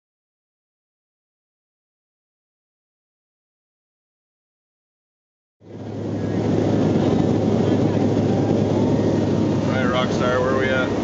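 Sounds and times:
aircraft cabin engine drone: 0:05.6 - 0:11.0.

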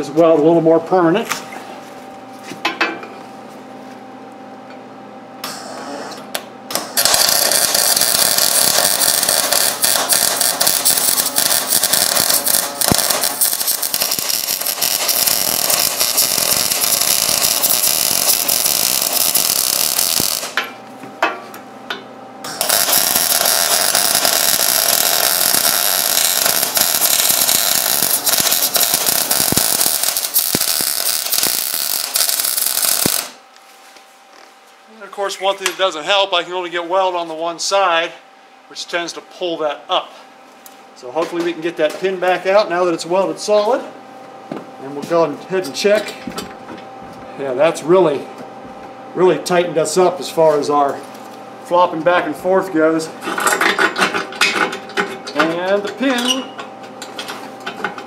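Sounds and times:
welding arc crackling: 0:06.7 - 0:20.7, 0:22.5 - 0:33.4.

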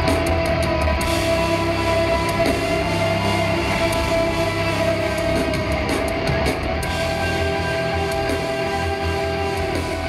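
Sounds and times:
distorted electric guitars: 0:00.0 - 0:10.0
drums: 0:00.0 - 0:10.0.

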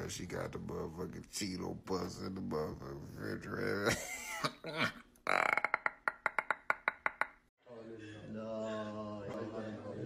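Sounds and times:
person laughing: 0:03.8 - 0:07.4.

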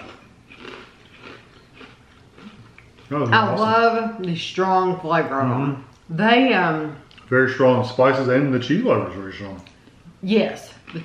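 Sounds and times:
soft chewing: 0:00.0 - 0:03.6, 0:07.0 - 0:07.4, 0:09.4 - 0:10.1, 0:10.7 - 0:11.0.

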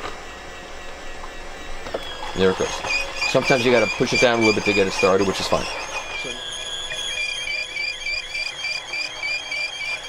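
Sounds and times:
cleaning machine high whine: 0:00.0 - 0:10.0
high-pitched chirping pulse: 0:02.0 - 0:10.0.

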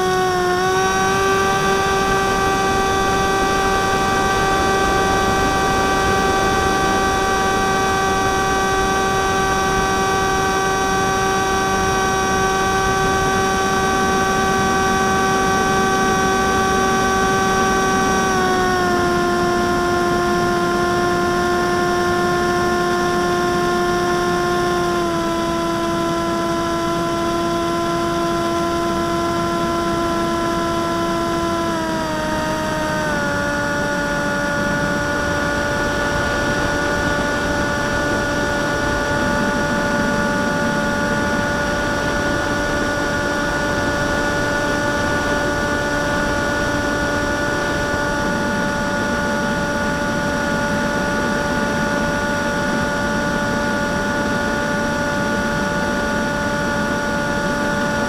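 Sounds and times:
model plane motor whine: 0:00.0 - 0:58.0.

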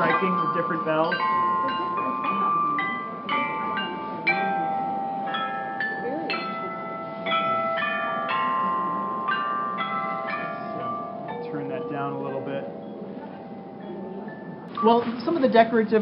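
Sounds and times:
bronze chime bells melody: 0:00.0 - 0:16.0.

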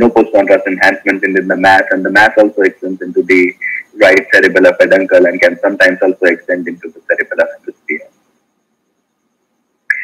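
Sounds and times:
man speaking: 0:00.0 - 0:08.2.

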